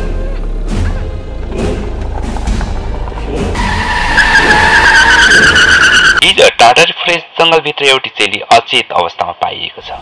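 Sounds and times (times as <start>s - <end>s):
low road rumble: 0.0s - 7.4s
car tyres screeching: 1.0s - 6.3s.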